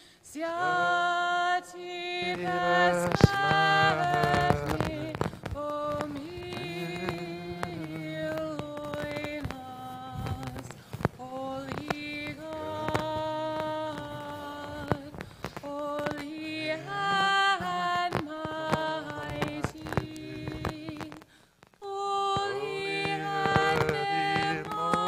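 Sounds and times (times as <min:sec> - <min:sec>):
unaccompanied liturgical chant: 0:00.3 - 0:21.2, 0:21.8 - 0:25.0
sharp clicks: 0:02.3 - 0:25.0.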